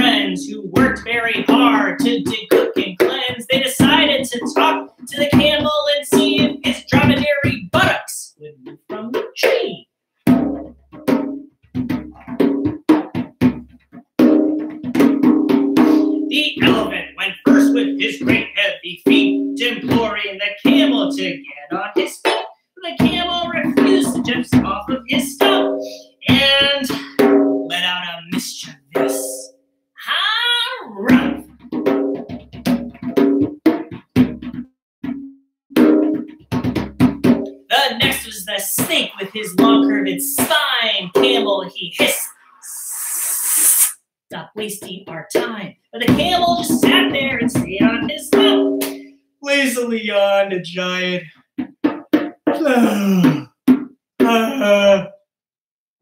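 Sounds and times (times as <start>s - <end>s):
man singing and chanting: 0.0s - 2.3s, 16.5s - 29.5s, 49.4s - 51.3s, 54.2s - 55.1s
hand drumming on goblet drum: 0.0s - 7.6s, 10.3s - 21.4s, 22.2s - 27.8s, 30.5s - 42.1s, 44.8s - 49.0s, 51.6s - 52.7s.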